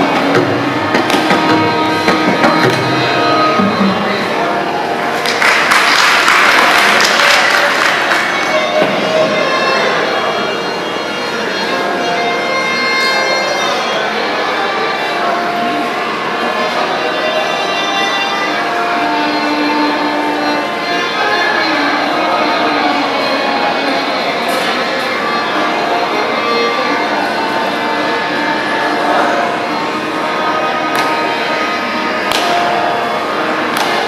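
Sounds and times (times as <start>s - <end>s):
violin holding a long note: 0.0s - 34.0s
sharp percussive taps: 0.2s - 3.0s, 32.3s - 32.7s.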